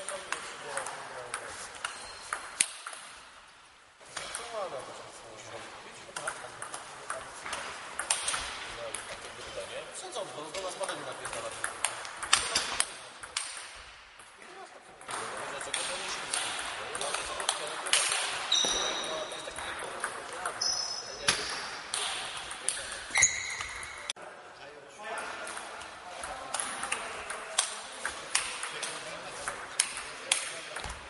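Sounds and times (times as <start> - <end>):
short high squeaks: 23.1 - 24.1.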